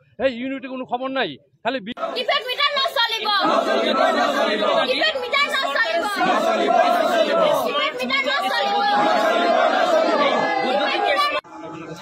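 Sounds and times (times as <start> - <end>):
crowd shouting slogans: 2.0 - 11.5.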